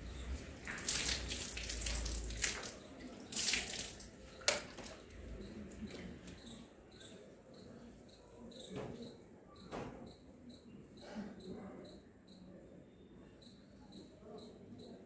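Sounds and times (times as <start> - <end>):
cricket chirping: 5.4 - 15.0.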